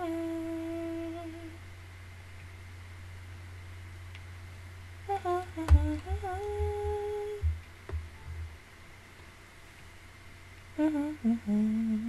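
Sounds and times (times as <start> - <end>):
woman humming: 0.0 - 1.6, 5.1 - 7.5, 10.8 - 12.0.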